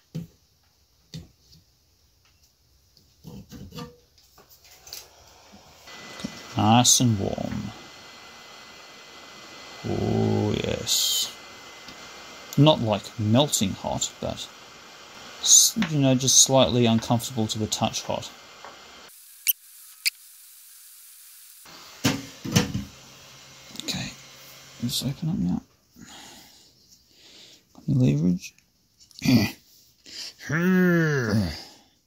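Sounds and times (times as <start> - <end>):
hot-air gun hissing: 4.6 - 26.5.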